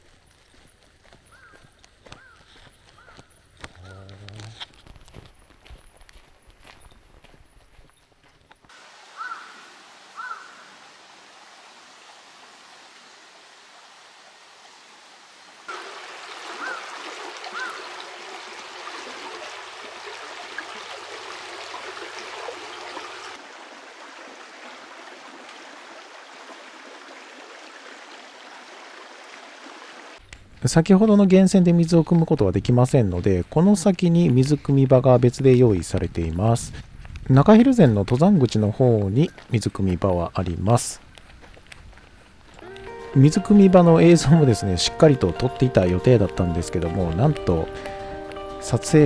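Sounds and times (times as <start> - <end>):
footsteps on gravel: 0.0 - 8.7, 34.2 - 43.1
stream running over rocks: 8.7 - 36.7, 37.3 - 47.8.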